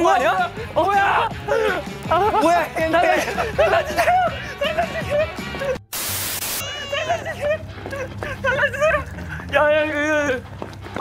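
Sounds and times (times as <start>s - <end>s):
static hiss burst: 5.9s - 6.6s.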